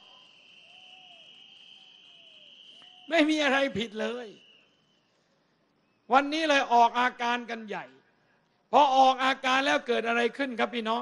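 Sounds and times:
night insects chirring: 0:00.0 - 0:06.2.

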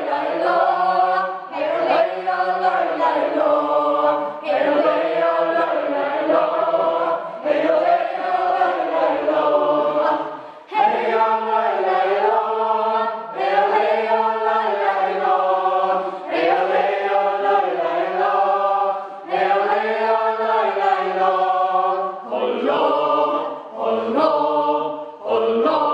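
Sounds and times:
group of people singing: 0:00.0 - 0:25.9.

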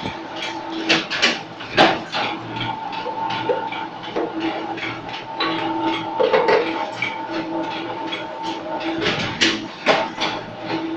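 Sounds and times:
machine humming and clacking: 0:00.0 - 0:10.9.

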